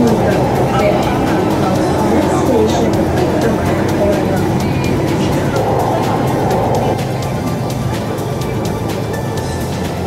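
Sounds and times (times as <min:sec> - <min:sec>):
music: 0:00.0 - 0:10.0
train wheels rumbling: 0:00.0 - 0:10.0.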